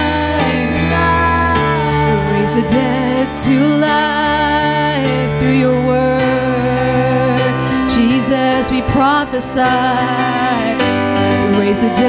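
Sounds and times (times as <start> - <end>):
sustained keyboard chords: 0.0 - 12.0
woman singing: 0.0 - 12.0.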